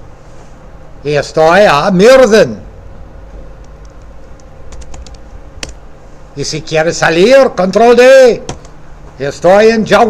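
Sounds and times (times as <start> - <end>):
keyboard typing: 3.6 - 5.8, 8.5 - 8.7.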